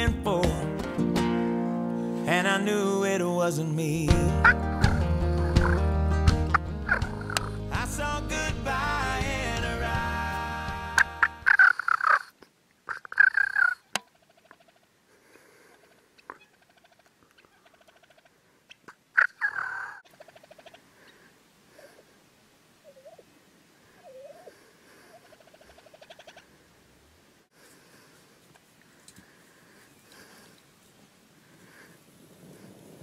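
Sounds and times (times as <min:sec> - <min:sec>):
country song with guitar: 0:00.0 - 0:11.5
turkey gobbling: 0:04.4 - 0:05.9, 0:06.9 - 0:07.6, 0:10.9 - 0:14.9, 0:16.2 - 0:20.8, 0:22.8 - 0:23.3, 0:23.9 - 0:26.6.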